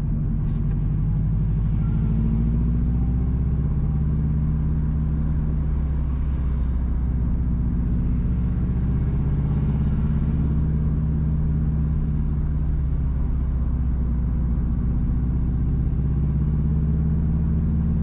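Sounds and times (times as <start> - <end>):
car engine and tyres droning: 0.0 - 18.0.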